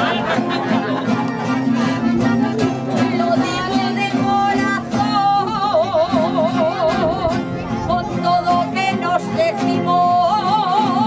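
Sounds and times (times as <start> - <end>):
accordion: 0.0 - 11.0
strummed plucked-string instruments: 0.0 - 11.0
person singing: 1.4 - 11.0.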